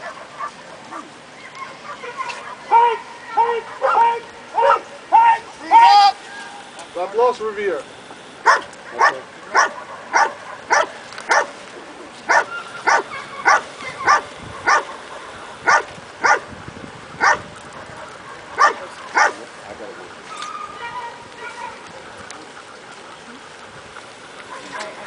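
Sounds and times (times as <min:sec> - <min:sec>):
dog barking: 0:00.0 - 0:04.9, 0:08.4 - 0:11.6, 0:12.3 - 0:16.5, 0:17.2 - 0:19.4.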